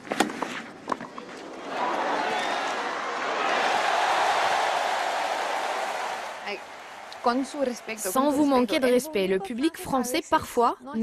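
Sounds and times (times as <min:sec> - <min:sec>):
crowd applauding and cheering: 0:01.4 - 0:08.9.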